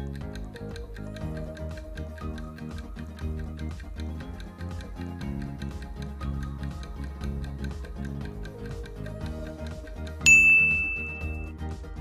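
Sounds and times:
background music: 0.0 - 12.0
bright ding chime: 10.2 - 11.5.

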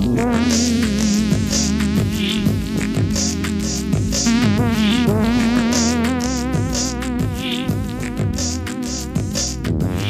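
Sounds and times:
dance music beat: 0.0 - 10.0
wobbling buzzing synthesizer: 0.0 - 10.0.

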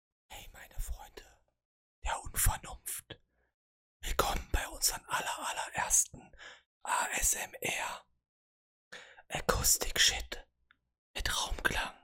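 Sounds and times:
man whispering: 0.3 - 3.2, 4.0 - 8.1, 9.1 - 10.5, 11.2 - 12.0.

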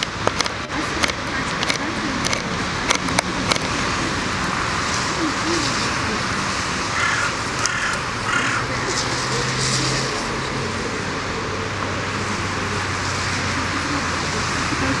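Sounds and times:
street traffic hum: 0.0 - 15.0
woman speaking faintly: 12.0 - 15.0.

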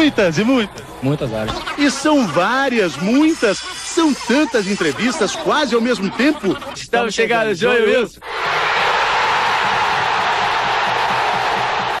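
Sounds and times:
crowd chanting: 8.2 - 12.0
stadium crowd cheering: 8.2 - 12.0.

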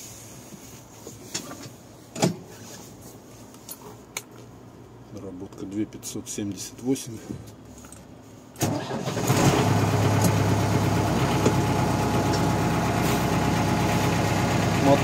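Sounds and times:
tractor diesel engine starting: 8.6 - 15.0
tractor diesel engine idling: 8.7 - 15.0.

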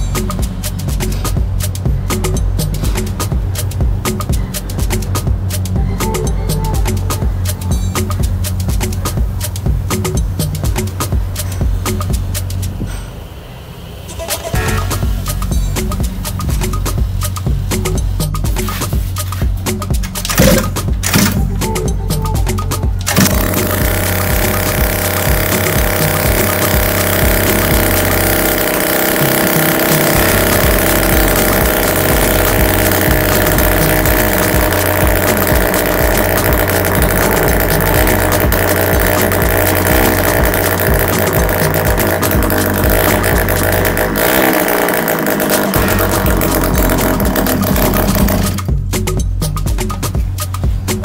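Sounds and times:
scooter engine running: 0.0 - 12.9, 13.9 - 48.9.

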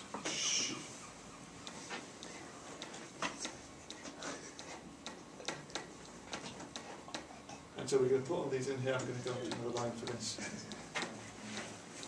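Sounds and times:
pen tapping on whiteboard: 9.3 - 11.2.

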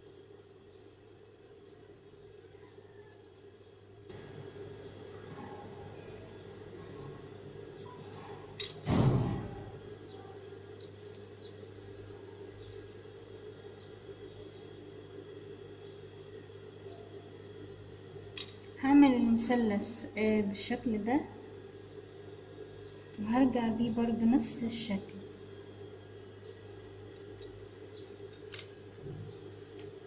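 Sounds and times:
low electric hum: 0.0 - 30.0.

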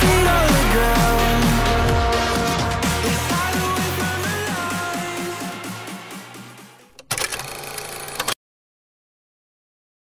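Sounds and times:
background music: 0.0 - 7.1
film projector clicking rattle: 6.9 - 8.4.

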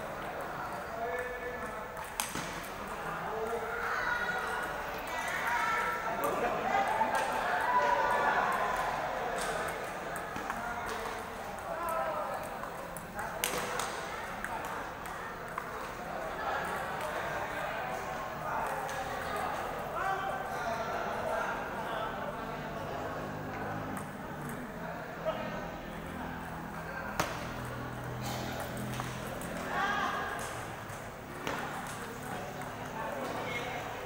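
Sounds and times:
babble of many voices echoing: 0.0 - 34.0.

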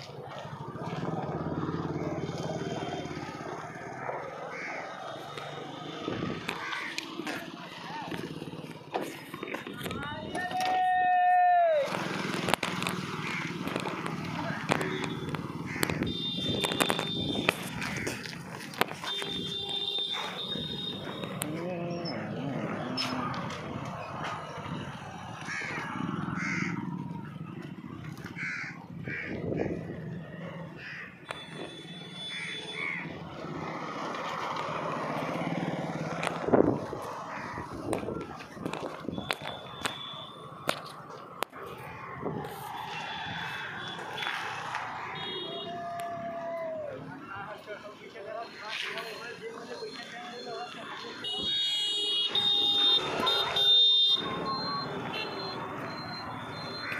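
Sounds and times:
voices: 0.0 - 56.9
crows cawing: 4.3 - 5.2, 6.4 - 7.1, 13.1 - 13.8, 15.6 - 16.0, 17.8 - 18.3, 25.3 - 27.0, 28.2 - 30.0, 30.8 - 31.2, 32.2 - 33.2, 37.1 - 37.8.

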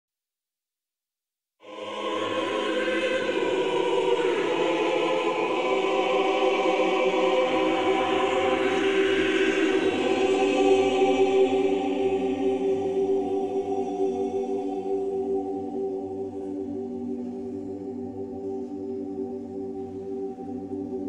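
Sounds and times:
choir singing held chords: 1.6 - 21.0.

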